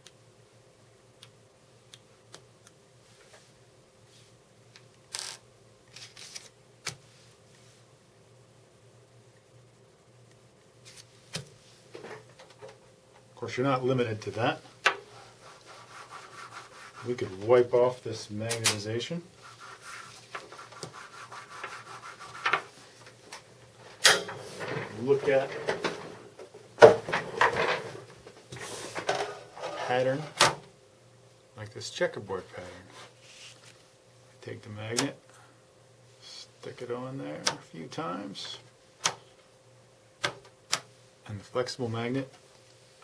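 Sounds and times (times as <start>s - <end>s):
hand scraping magnet sheet: 19.4s - 22.7s.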